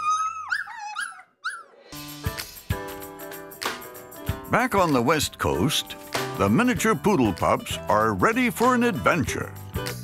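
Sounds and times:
puppy whimpering and yipping: 0.0s - 1.9s.

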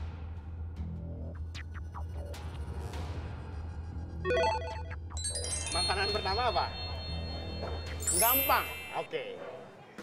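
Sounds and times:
electronic jingle notes: 4.3s - 9.1s.

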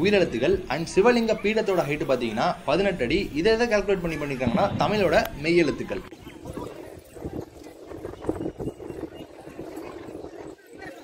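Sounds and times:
faint background murmur: 0.0s - 11.0s.

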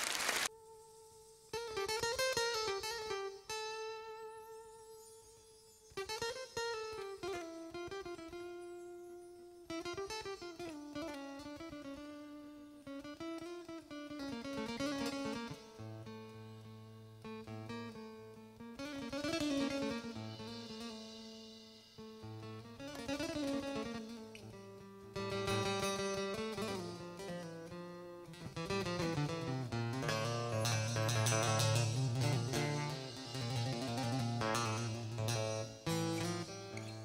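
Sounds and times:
acoustic guitar melody: 0.5s - 37.0s.

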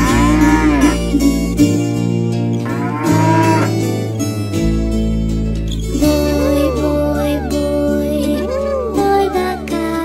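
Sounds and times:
bull mooing: 0.0s - 1.2s, 2.6s - 3.9s
plucked-string music: 0.0s - 10.0s.

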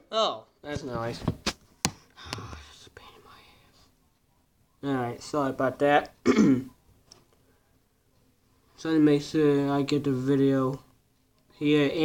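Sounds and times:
man clearing his throat: 6.2s - 6.8s.

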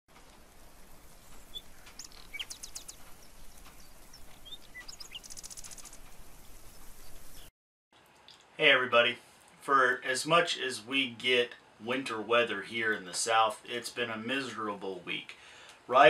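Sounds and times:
songbirds chirping and trilling: 0.2s - 7.5s.

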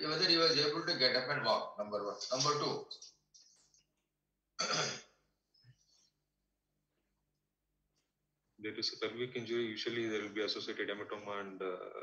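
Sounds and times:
person clearing throat: 4.6s - 5.2s.

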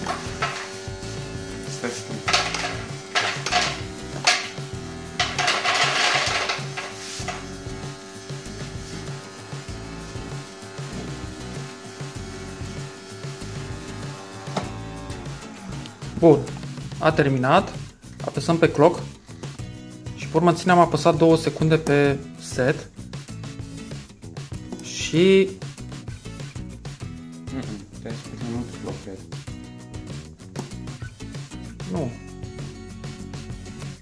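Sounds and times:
motor hum: 0.0s - 17.0s.

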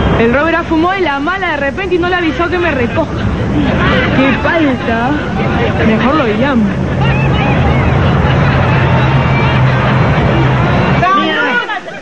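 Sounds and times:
vehicle engine humming: 0.0s - 11.8s
constant noise: 0.0s - 12.0s
faint background voices: 2.5s - 12.0s.

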